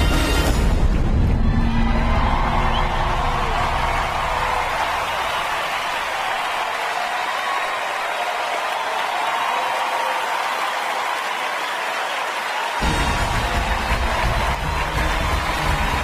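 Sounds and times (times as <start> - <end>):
music: 0.0 - 4.3, 12.8 - 16.0
audience applauding: 1.7 - 16.0.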